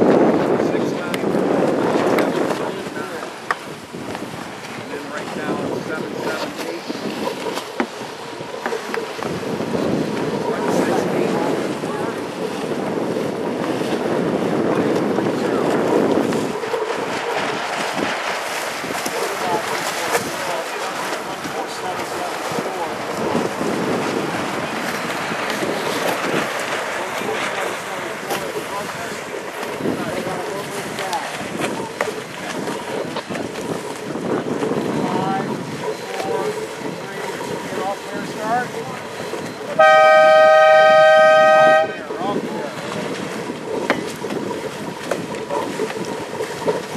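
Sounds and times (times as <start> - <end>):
choppy water washing: 0.0 - 46.9
wind buffeting microphone: 0.0 - 46.9.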